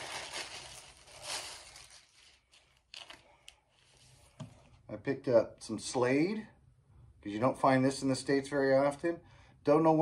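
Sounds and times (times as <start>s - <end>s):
record sleeves rustling: 0.0s - 4.7s.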